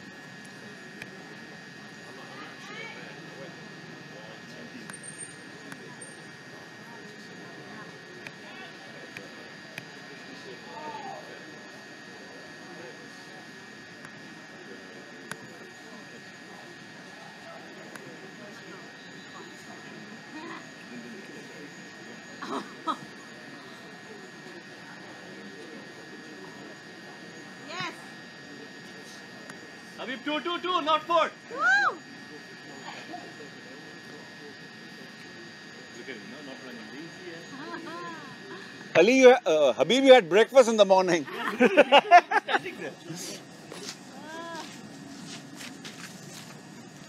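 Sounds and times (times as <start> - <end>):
distant voices murmuring: 0.0 - 40.6, 41.2 - 47.0
steady background hum: 0.0 - 47.0.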